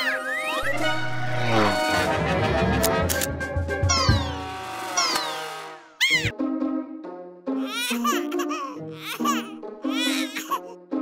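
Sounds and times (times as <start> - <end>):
cartoon music: 0.0 - 2.3, 3.8 - 6.4, 7.5 - 10.8.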